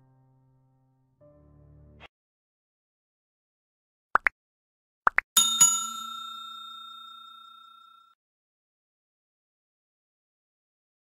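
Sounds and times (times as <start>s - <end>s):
bell ding: 5.4s - 8.2s.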